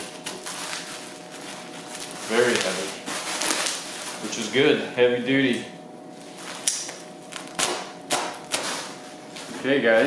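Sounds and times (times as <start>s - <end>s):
sharp snaps of handled packaging: 6.6s - 8.8s.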